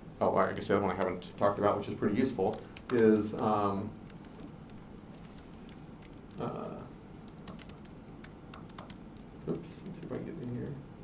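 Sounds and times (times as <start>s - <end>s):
laptop keyboard typing: 2.4s - 10.8s.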